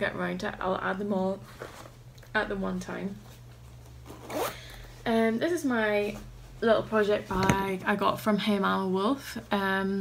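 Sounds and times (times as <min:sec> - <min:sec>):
zipper being pulled: 0:04.0 - 0:04.8.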